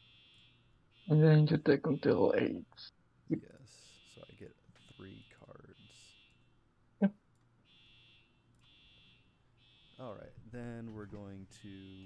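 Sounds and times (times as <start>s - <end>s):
electronic alarm beeping: 11.8s - 12.0s.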